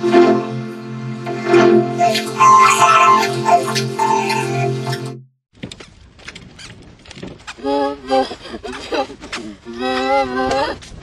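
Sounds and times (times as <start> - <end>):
rustles and clicks: 5.6 - 7.7.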